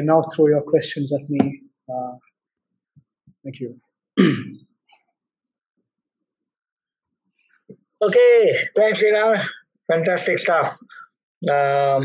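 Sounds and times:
person clearing throat: 4.2 - 4.6, 11.5 - 12.0.

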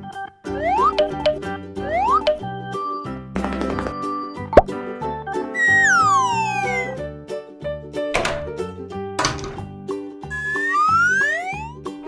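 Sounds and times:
bouncy children's music: 0.0 - 12.0
cartoon plop sound effect: 0.5 - 2.5, 5.6 - 7.0, 10.3 - 11.8.

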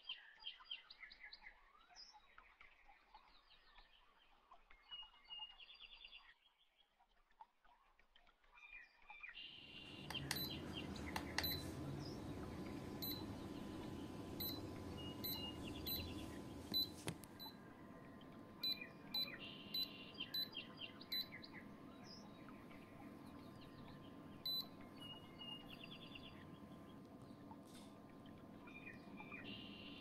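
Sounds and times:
birds chirping: 9.4 - 30.0
low steady noise: 9.7 - 30.0
high-pitched electronic beeps: 13.0 - 13.3, 14.4 - 17.6, 18.6 - 21.4, 24.4 - 25.6.

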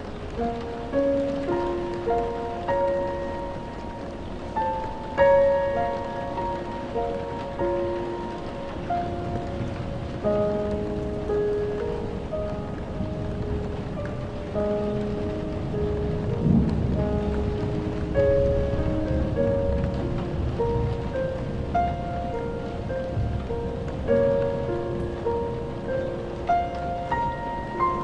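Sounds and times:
low thunder rumble: 0.0 - 28.0
piano notes: 0.0 - 28.0
rain hissing: 0.0 - 28.0.

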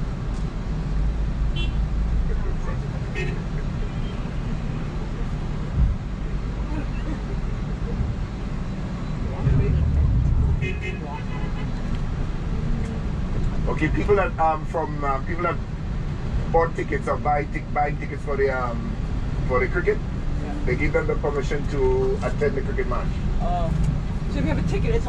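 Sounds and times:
bus engine and road rumble: 0.0 - 25.0.

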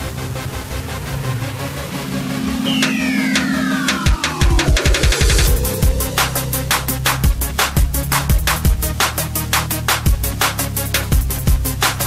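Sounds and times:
held low synth note: 1.7 - 6.7
falling whistle-like pitch sweep: 2.0 - 6.9.

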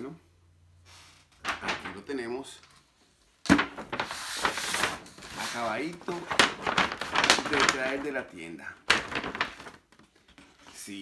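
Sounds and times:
paper bag knocking on wooden desk: 3.5 - 4.1
stiff paper rustling: 3.5 - 11.0.

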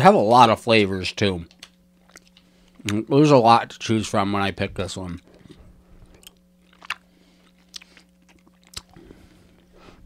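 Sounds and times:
low steady hum: 0.0 - 10.0
mouth clicks and smacks chewing: 1.5 - 3.0, 5.2 - 9.1.

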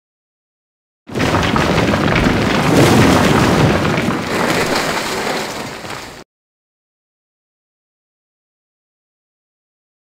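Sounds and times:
stone crumbling and rumbling: 1.1 - 6.2.

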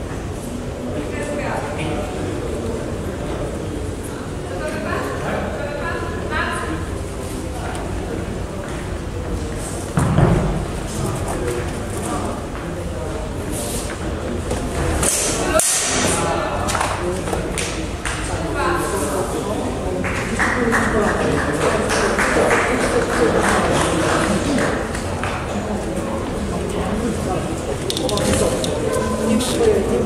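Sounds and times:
spectators chattering in a hall: 0.0 - 30.0
people talking indistinctly: 0.5 - 30.0.

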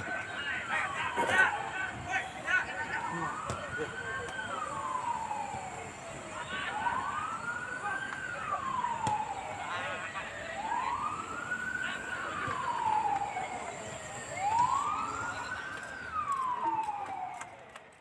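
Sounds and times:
siren wailing: 0.0 - 17.8.

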